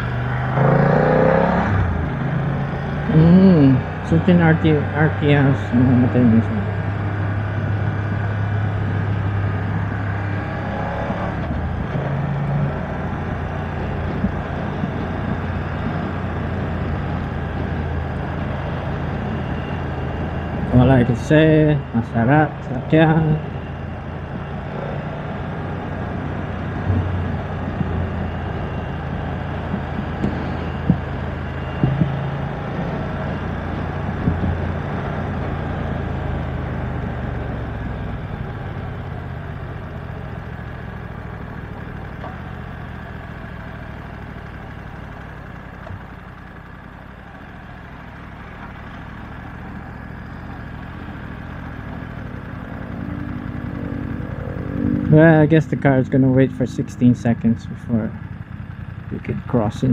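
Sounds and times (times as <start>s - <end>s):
motorcycle engine: 0.0s - 59.9s
wind and road noise: 0.0s - 59.9s.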